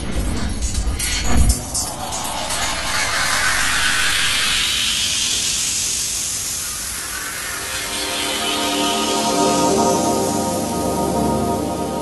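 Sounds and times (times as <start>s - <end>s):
synthesized noise riser: 0.6s - 8.1s.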